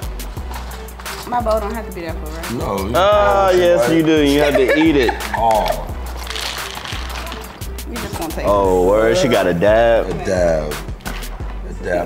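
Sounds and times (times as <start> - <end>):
background music with bass beat: 0.0 - 12.0
cereal poured into a bowl: 6.2 - 7.6.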